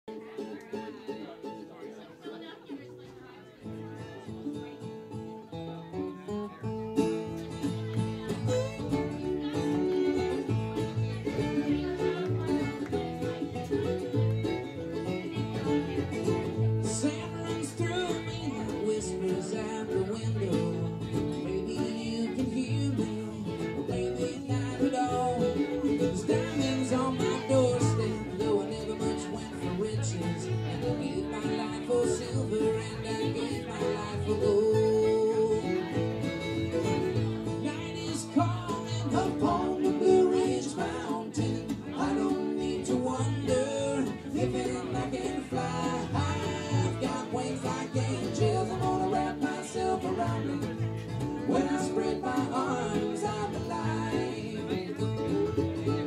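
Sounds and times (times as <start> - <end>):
fiddle: 0.0 - 56.0
mandolin: 0.0 - 56.0
strummed acoustic guitar: 0.1 - 56.0
upright bass: 2.9 - 56.0.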